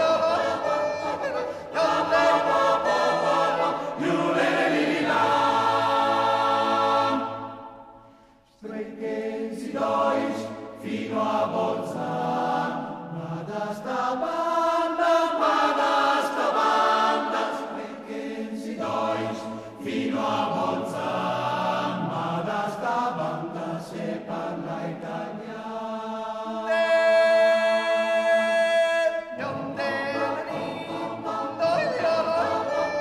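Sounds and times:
choir singing a cappella: 0.0 - 33.0.

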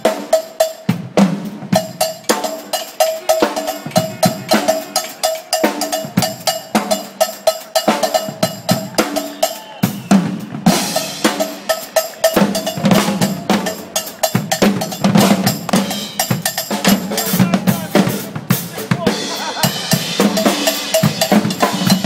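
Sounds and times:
drum kit groove: 0.0 - 22.0
congas: 1.7 - 22.0
high-pitched ringing strike: 2.3 - 6.7.

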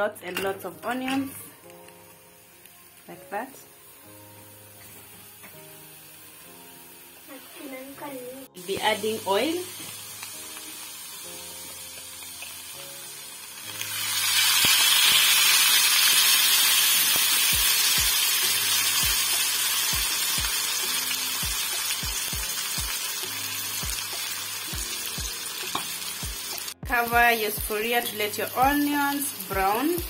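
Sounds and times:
onions and oil sizzling: 0.0 - 30.0.

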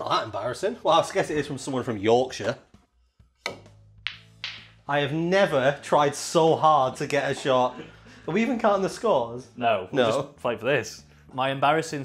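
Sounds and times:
low background music: 0.0 - 12.0
snooker balls clicking: 3.4 - 4.8.

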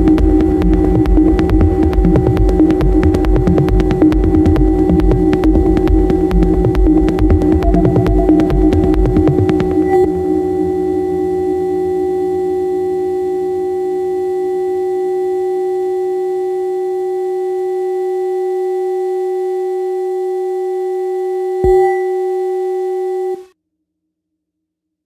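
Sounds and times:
faint low pulse: 0.0 - 16.0, 21.6 - 23.4
sustained synthesizer tone: 0.0 - 19.5, 20.7 - 23.5.

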